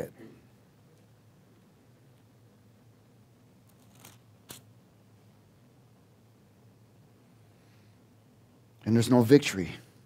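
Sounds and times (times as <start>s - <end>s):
low steady hum: 0.0s - 10.0s
paper rustling: 3.7s - 4.6s.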